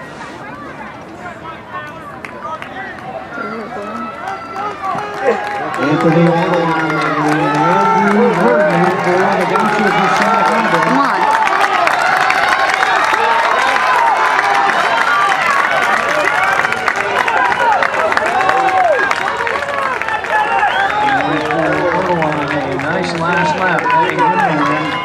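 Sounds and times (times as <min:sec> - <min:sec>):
spectators yelling and cheering: 0:00.0 - 0:25.0
people clapping: 0:01.8 - 0:25.0.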